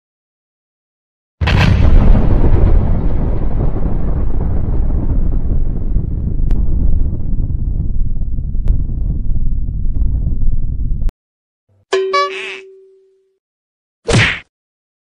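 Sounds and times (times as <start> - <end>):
explosion blast and rumble: 1.4 - 11.1.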